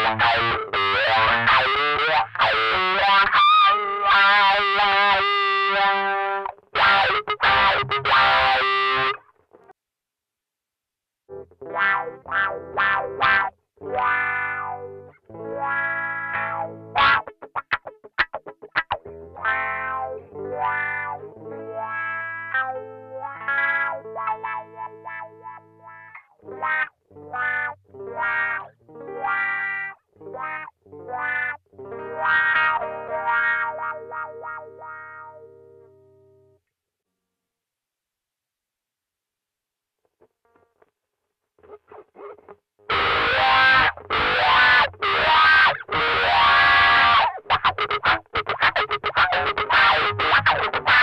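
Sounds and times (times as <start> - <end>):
electric guitar with wah effect: 0.0 - 9.7, 11.3 - 36.6, 41.6 - 51.0.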